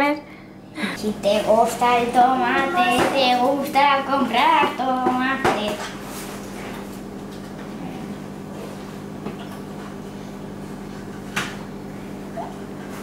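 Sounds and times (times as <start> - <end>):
low room hum: 0.0 - 13.0.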